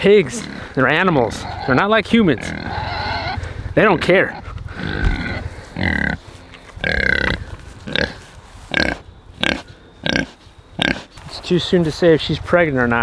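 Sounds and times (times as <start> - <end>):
pigs making short calls: 0.2 - 11.2.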